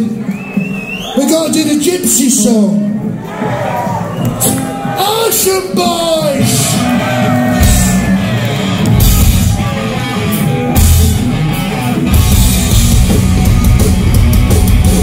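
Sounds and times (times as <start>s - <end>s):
punk rock band playing: 1.7s - 15.0s
heavy accented band hits: 4.3s - 15.0s.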